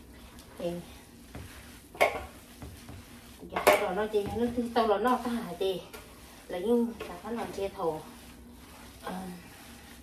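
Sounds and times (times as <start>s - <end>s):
hands kneading ground meat: 0.0s - 10.0s.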